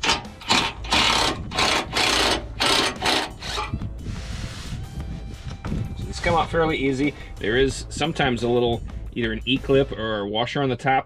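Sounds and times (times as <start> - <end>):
impact driver bursts: 0.0 - 3.7.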